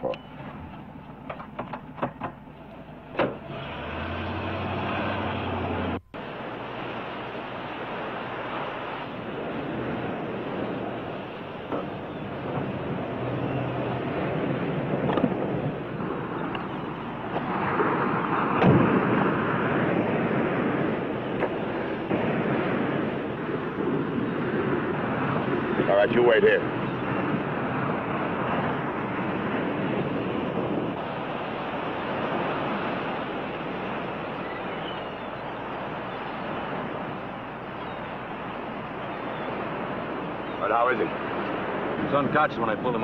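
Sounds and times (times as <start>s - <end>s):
engine hum: 0.0s - 26.0s
surf rushing: 0.0s - 43.0s
wind: 0.0s - 43.0s.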